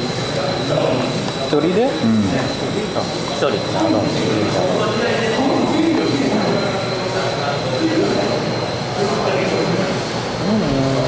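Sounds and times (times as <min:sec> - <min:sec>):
thin high whine: 0:00.0 - 0:11.0.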